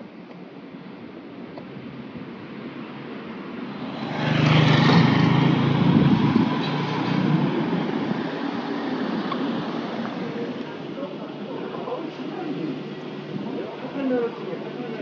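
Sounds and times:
motor scooter passing: 3.7 - 14.4.

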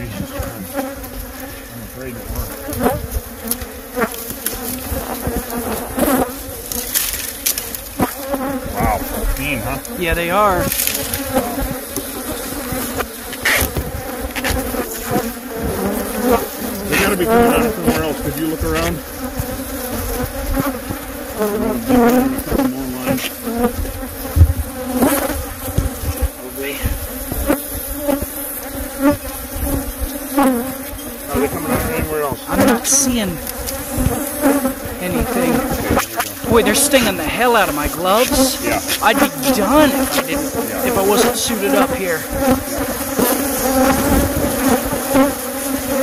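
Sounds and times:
bees buzzing: 0.0 - 46.0.

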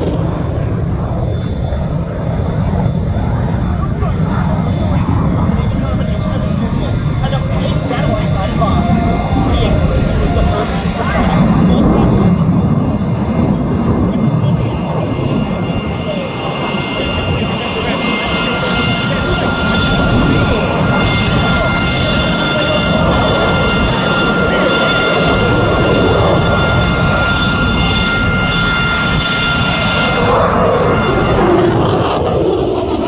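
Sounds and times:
high jet whine: 0.0 - 33.0
jet engines roaring: 0.0 - 33.0.

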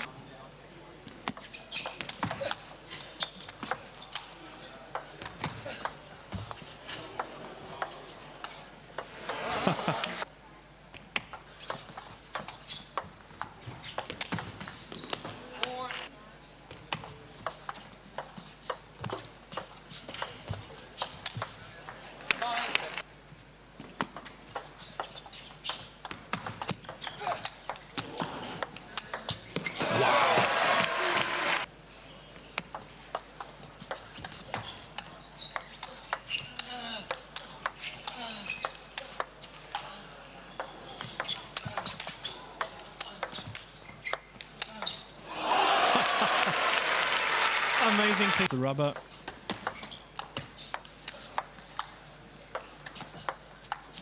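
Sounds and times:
crowd shouting and cheering: 29.7 - 31.7, 45.2 - 48.8.

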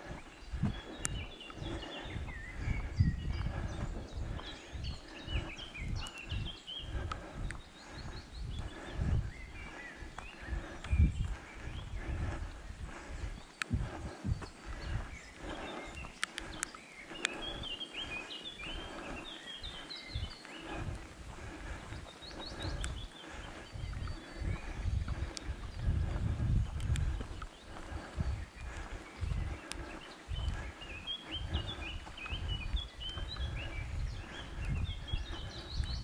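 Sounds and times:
songbirds chirping: 0.0 - 36.0.

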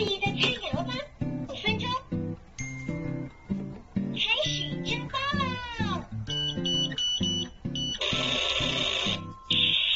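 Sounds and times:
children's background music: 0.0 - 8.0
high electronic beeps: 6.3 - 9.9.

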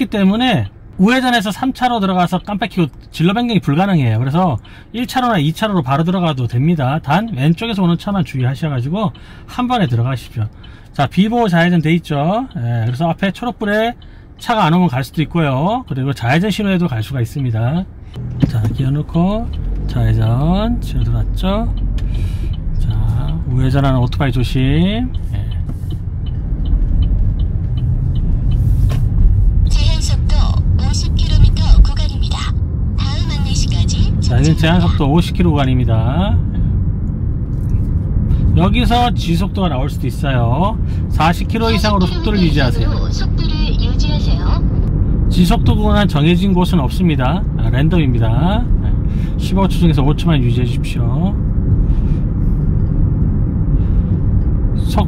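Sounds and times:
car engine and road rumble: 0.0 - 55.0
turn signal ticking: 0.0 - 55.0.

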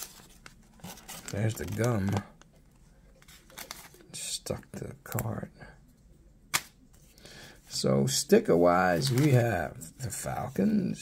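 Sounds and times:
wrapper rustling: 0.0 - 2.2, 3.2 - 4.1.

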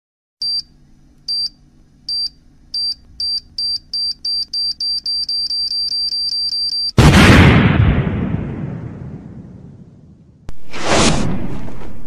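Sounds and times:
electronic countdown beeps: 0.4 - 0.7, 1.3 - 7.0
firecracker bang: 7.0 - 12.0.

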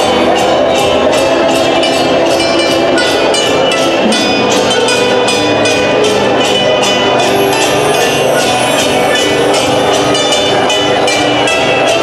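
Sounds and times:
jingling percussion beat: 0.0 - 12.0
live band music: 0.1 - 12.0.

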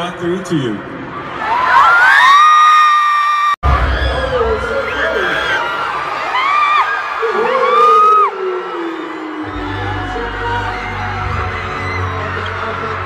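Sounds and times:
crowd screaming: 1.0 - 13.0
heavy bass music: 9.5 - 13.0.

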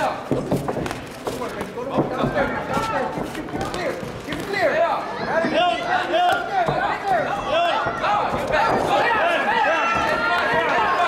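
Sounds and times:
crowd shouting encouragement: 4.6 - 11.0.

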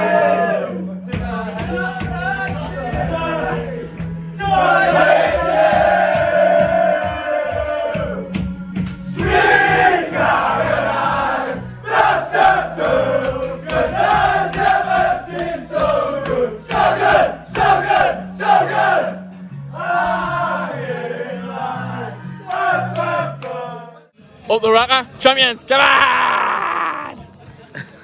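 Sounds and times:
men singing and chanting: 0.0 - 24.1.

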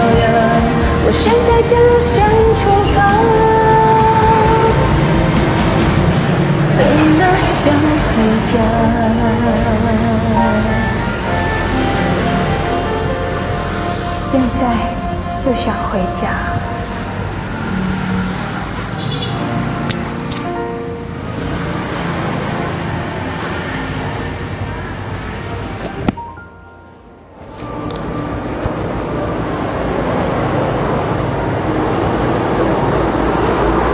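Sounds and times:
loud steady rumbling: 0.0 - 26.1
vehicle engine low hum: 0.0 - 26.2
road traffic rush: 0.0 - 33.9.

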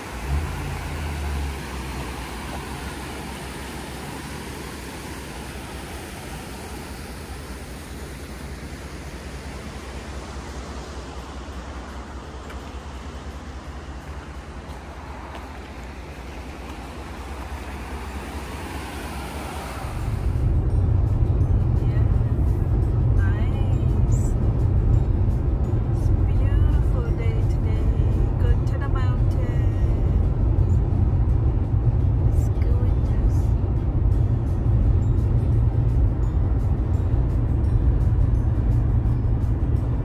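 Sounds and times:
outdoor hiss: 0.0 - 20.4
car road noise low rumble: 0.0 - 40.0.

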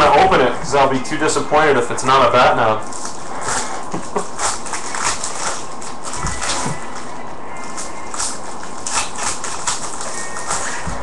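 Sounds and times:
plastic wrapper crinkling: 2.8 - 11.0.

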